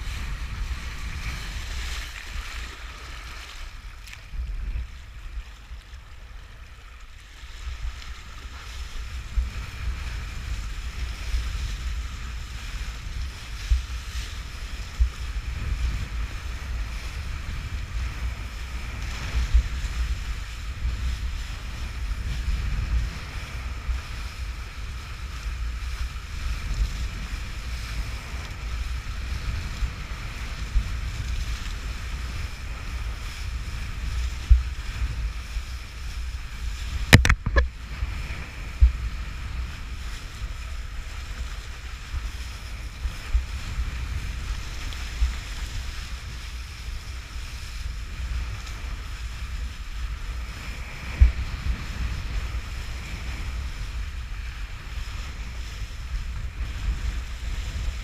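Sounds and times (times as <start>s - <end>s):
board skimming across choppy water: 0.0s - 58.0s
wind rumbling on microphone: 0.0s - 58.0s.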